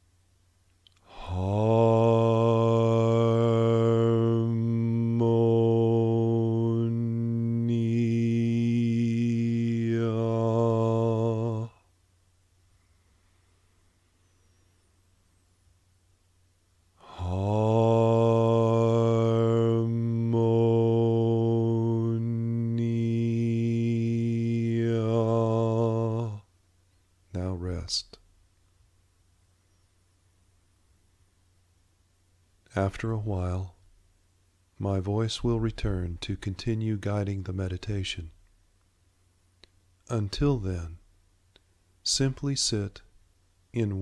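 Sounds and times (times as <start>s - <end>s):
man chanting on one low note: 1.0s - 11.9s, 17.0s - 26.5s, 27.3s - 28.2s, 32.7s - 33.8s, 34.8s - 38.4s, 40.0s - 41.1s, 42.0s - 43.1s, 43.7s - 44.0s.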